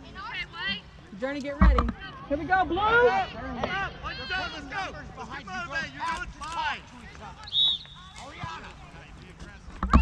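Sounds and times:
referee's whistle blast: 0:07.5 - 0:08.0.

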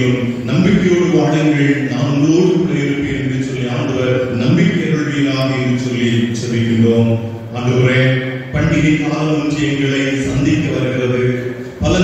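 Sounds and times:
man reciting in chant-like cadence: 0:00.0 - 0:12.0.

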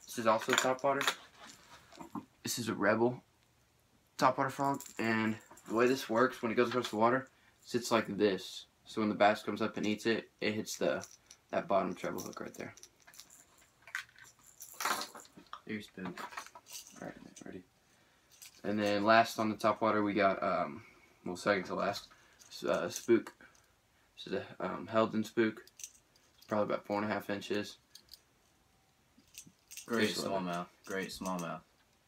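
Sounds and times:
person speaking: 0:04.2 - 0:12.8, 0:18.6 - 0:23.4, 0:29.8 - 0:31.7.

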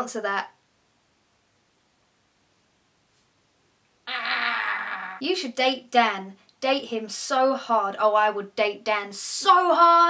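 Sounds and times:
woman's buzzy vocal noise: 0:04.1 - 0:05.2.

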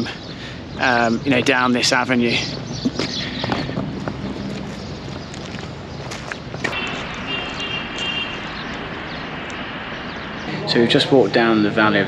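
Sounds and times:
rushing outdoor noise: 0:00.0 - 0:12.0.

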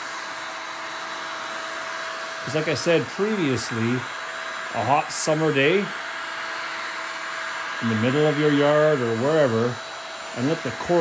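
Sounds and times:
heat gun blowing air: 0:00.0 - 0:11.0.

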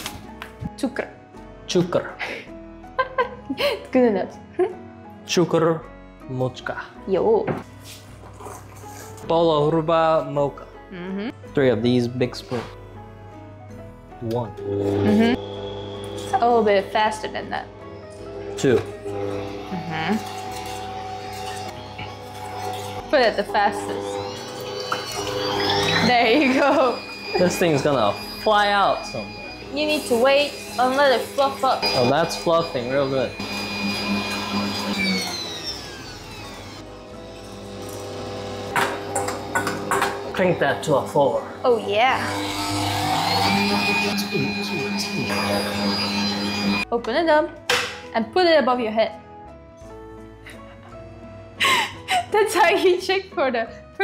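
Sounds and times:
electric mixer whipping: 0:14.5 - 0:46.9.

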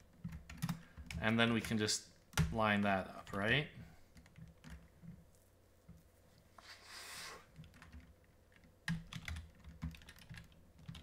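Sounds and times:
typing on computer keyboard: 0:00.1 - 0:02.5, 0:04.1 - 0:04.9, 0:07.6 - 0:11.0.

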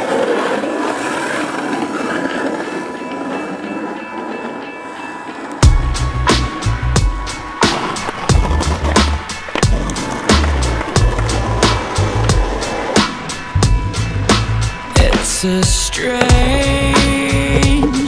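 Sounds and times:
skateboard wheels rolling on asphalt: 0:00.0 - 0:18.0
music with heavy bass and drums: 0:05.6 - 0:18.0.

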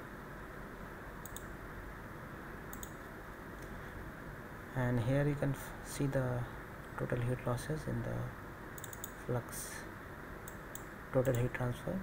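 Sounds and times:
low background hiss: 0:00.0 - 0:12.0
computer mouse clicks: 0:01.2 - 0:01.5, 0:02.7 - 0:03.0, 0:08.8 - 0:09.2, 0:10.4 - 0:11.5.

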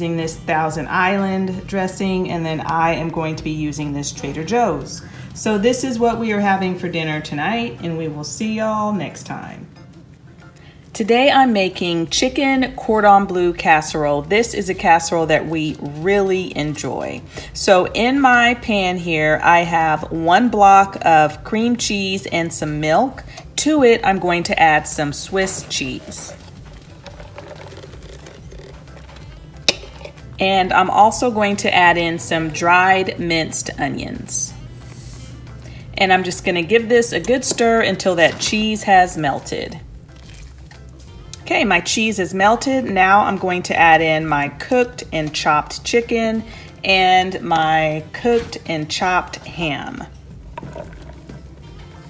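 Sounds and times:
quiet background music: 0:00.0 - 0:52.0.

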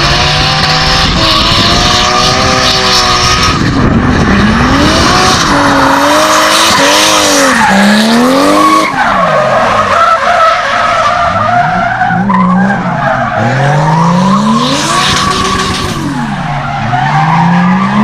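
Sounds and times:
car engine revving hard: 0:00.0 - 0:09.7, 0:12.5 - 0:18.0
tyres skidding on asphalt: 0:00.0 - 0:18.0.

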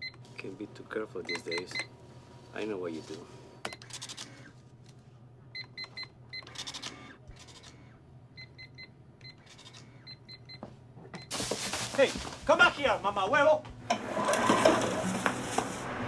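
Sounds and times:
cash register keypad beeps: 0:01.3 - 0:01.9, 0:05.6 - 0:07.7
plastic bag rustling: 0:11.3 - 0:12.9.

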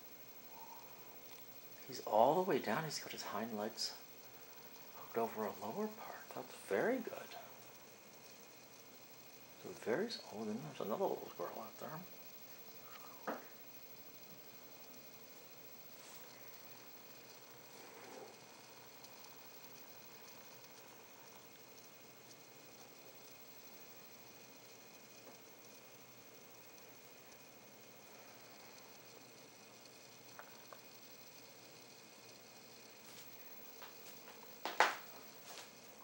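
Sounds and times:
faint steady hiss: 0:00.0 - 0:36.0
faint clicks: 0:00.4 - 0:35.8.

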